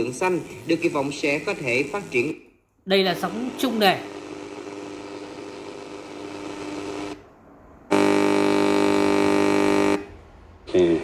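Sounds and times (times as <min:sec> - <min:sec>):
radio static hiss: 0:00.0 - 0:02.4, 0:03.1 - 0:07.2
loud steady buzz: 0:03.2 - 0:10.3.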